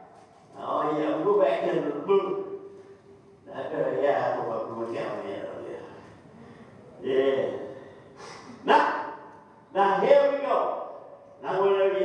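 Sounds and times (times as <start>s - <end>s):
breathy intake: 7.8s - 8.6s
man shouting: 8.6s - 9.2s.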